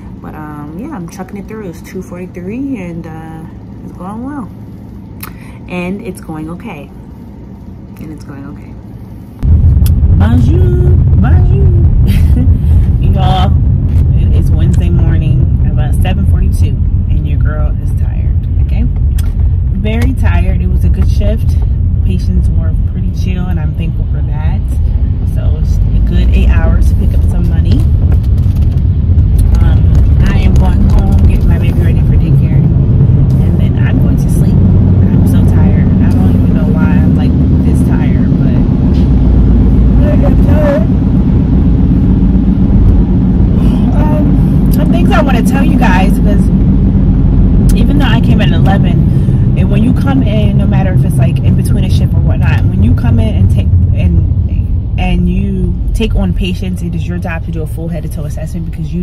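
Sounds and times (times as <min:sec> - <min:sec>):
woman speaking: 0:00.0 - 0:04.6, 0:05.2 - 0:07.0, 0:07.9 - 0:08.8, 0:09.9 - 0:28.0, 0:29.4 - 0:39.1, 0:39.8 - 0:41.0, 0:43.5 - 0:46.6, 0:47.6 - 0:59.0
car cabin road and engine rumble: 0:00.0 - 0:59.0.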